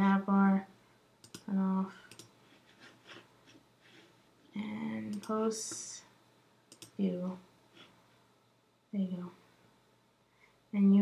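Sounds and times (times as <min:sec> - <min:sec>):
computer mouse clicking: 0:01.2 - 0:02.4, 0:05.1 - 0:05.9, 0:06.7 - 0:07.0
breath: 0:10.3 - 0:10.6.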